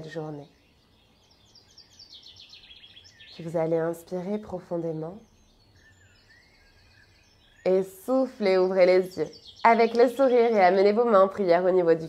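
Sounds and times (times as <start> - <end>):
distant bird chirping: 0.0 - 12.0.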